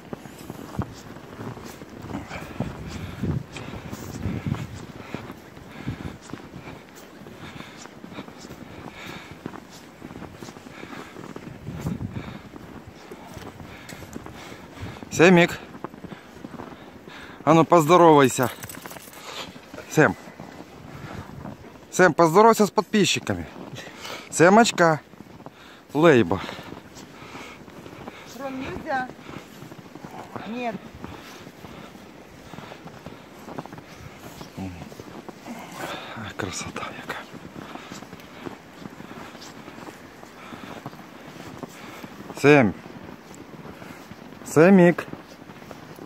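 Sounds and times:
footsteps crunching in snow: 0:00.0 - 0:46.0.

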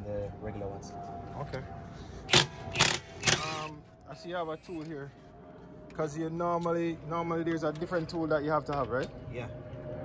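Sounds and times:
impact wrench bursts: 0:02.3 - 0:03.7.

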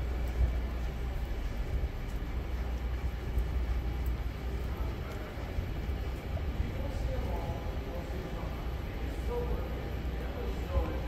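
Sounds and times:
low warehouse rumble: 0:00.0 - 0:11.0.

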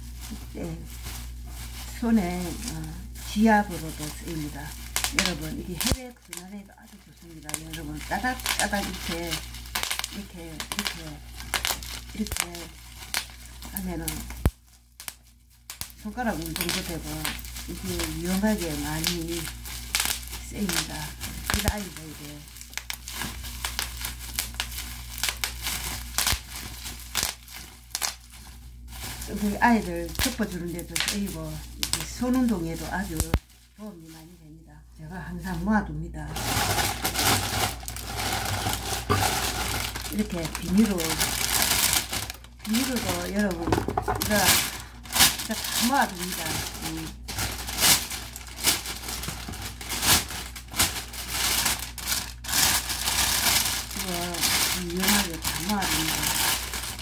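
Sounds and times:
bubble wrap popping: 0:00.0 - 0:34.3, 0:36.3 - 0:57.0
bubble wrap crinkling: 0:00.0 - 0:57.0.

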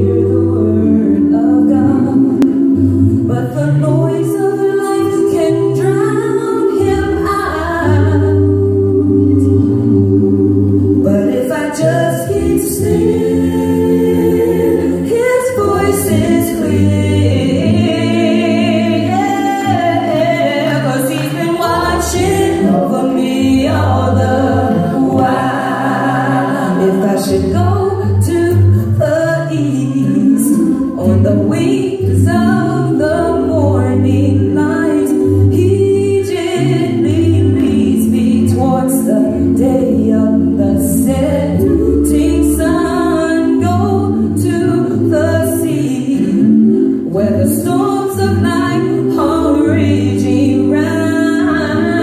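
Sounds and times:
vocal group singing a cappella: 0:00.0 - 0:52.0.

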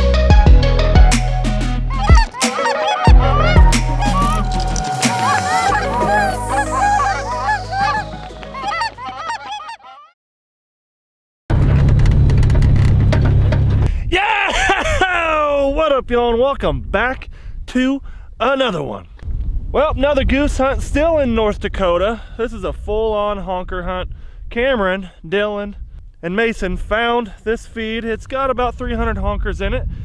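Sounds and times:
music with heavy bass: 0:00.0 - 0:08.9
geese honking: 0:01.9 - 0:10.1.

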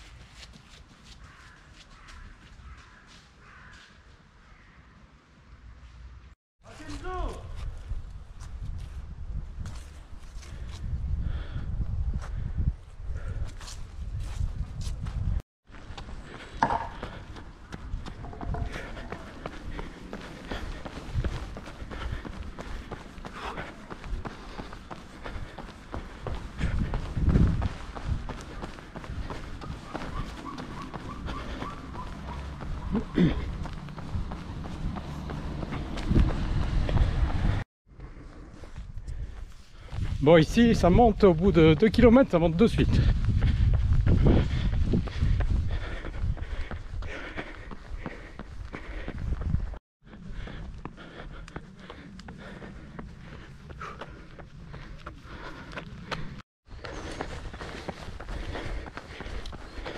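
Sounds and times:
footsteps while jogging: 0:00.0 - 0:04.3, 0:13.1 - 0:59.9.

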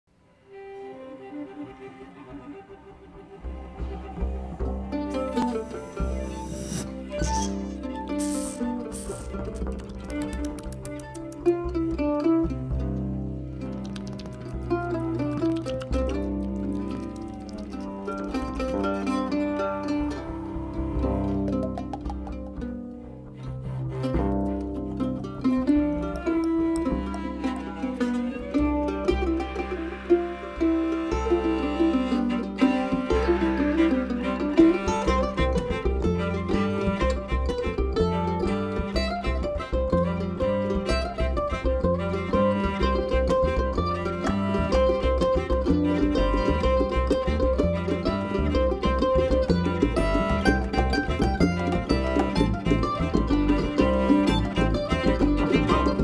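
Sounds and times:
acoustic string band playing: 0:00.1 - 0:56.0.

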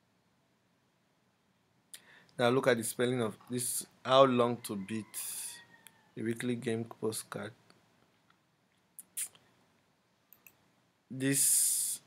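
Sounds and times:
short hiss: 0:09.0 - 0:09.5
computer mouse clicks: 0:10.3 - 0:10.6.

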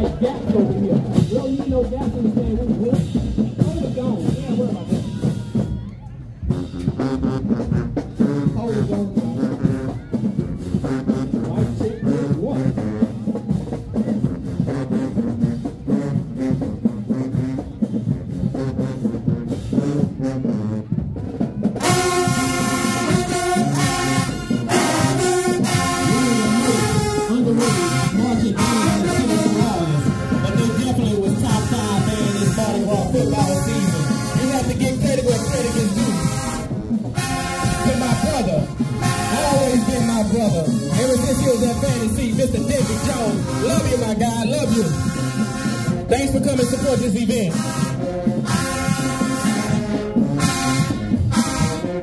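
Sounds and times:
drumline cadence: 0:00.0 - 0:52.0
brass section playing loudly: 0:06.4 - 0:52.0.

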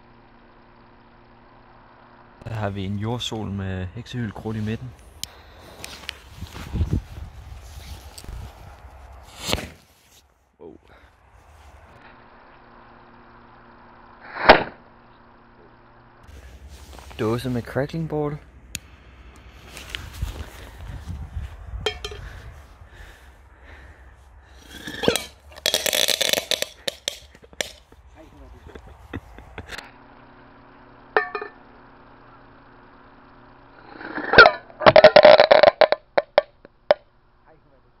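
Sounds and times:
firework crack: 0:08.2 - 0:10.2, 0:14.2 - 0:14.9, 0:24.6 - 0:28.0
firework hiss: 0:09.2 - 0:10.1, 0:14.2 - 0:14.8.

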